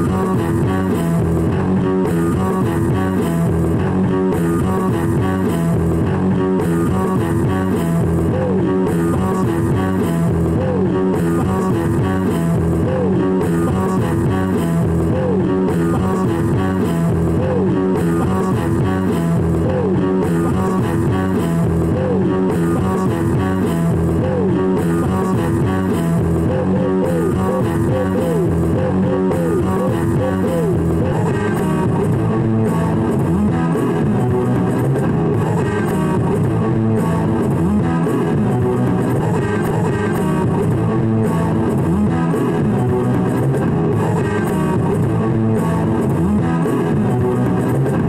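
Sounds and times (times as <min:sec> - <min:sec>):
rock music: 0:00.0 - 0:48.0.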